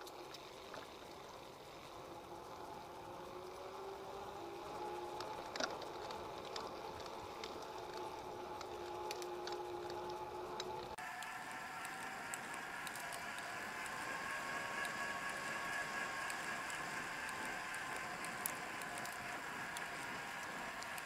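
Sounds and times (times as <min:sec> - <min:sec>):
bicycle tyres humming on pavement: 0:00.0 - 0:21.0
light ticks: 0:04.7 - 0:21.0.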